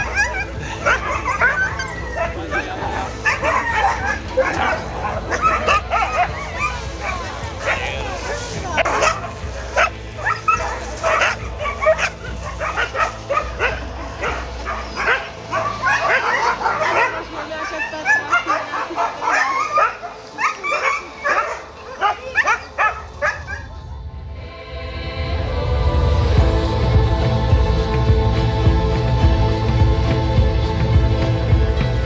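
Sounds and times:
huskies barking and yipping: 0:00.0 - 0:23.8.

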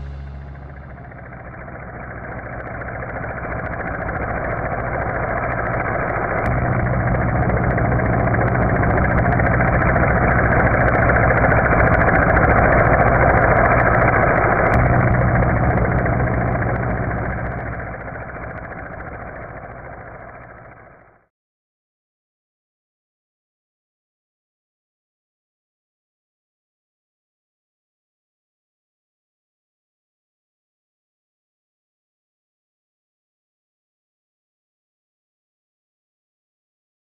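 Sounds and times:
rushing noise: 0:00.0 - 0:21.0
engine-like hum: 0:00.0 - 0:21.2.

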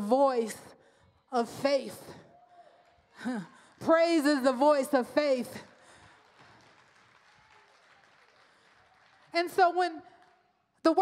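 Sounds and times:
faint applause: 0:05.7 - 0:10.6.

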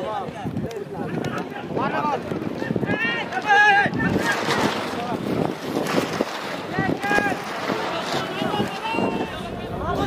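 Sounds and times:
wind rushing over microphone: 0:00.0 - 0:10.0
people shouting: 0:06.8 - 0:10.0.

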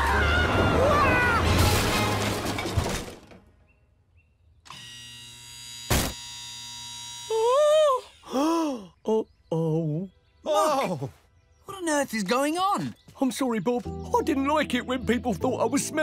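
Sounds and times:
held musical chord: 0:13.9 - 0:16.0.

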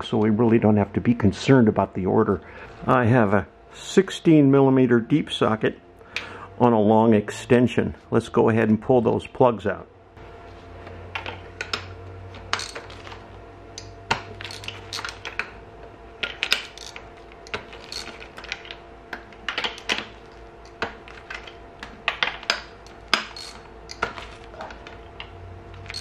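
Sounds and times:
metallic clicks and clinks: 0:13.8 - 0:15.4, 0:22.1 - 0:24.1, 0:25.8 - 0:26.0.

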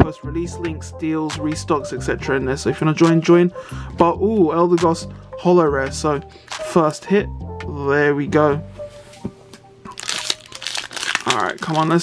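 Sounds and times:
faint background music: 0:00.0 - 0:12.0
foil wrapper crinkling: 0:09.9 - 0:12.0.

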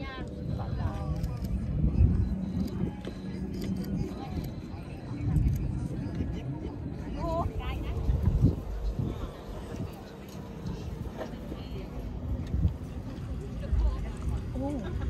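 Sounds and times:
background voices talking: 0:00.0 - 0:15.0
constant low rumble: 0:00.0 - 0:15.0.

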